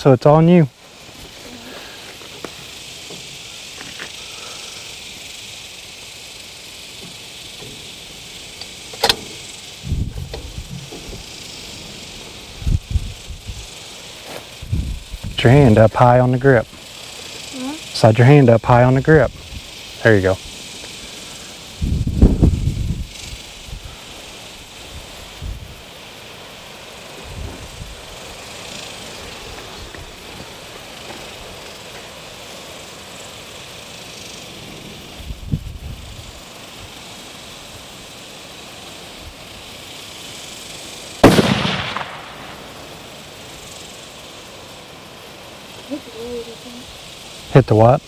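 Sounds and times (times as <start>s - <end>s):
wind buffeting microphone: 9.4s - 13.8s, 14.5s - 16.0s, 21.7s - 24.0s, 24.8s - 25.9s, 27.2s - 28.5s, 35.1s - 37.0s
rifle shot: 41.2s - 42.8s.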